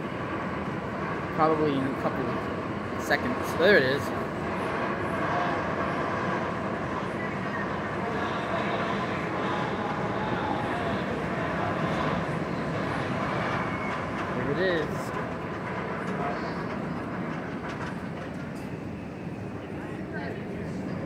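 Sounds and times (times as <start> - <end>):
roller coaster train running on track: 0.0 - 21.0.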